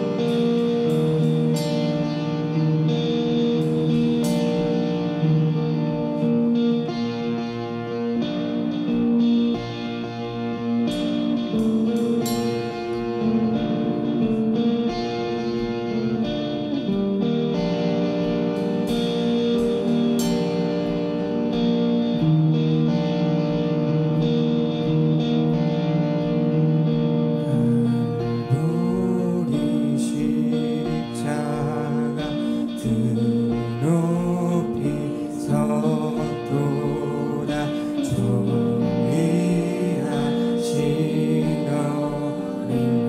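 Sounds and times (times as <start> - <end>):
acoustic guitar chords: 0.0 - 43.0.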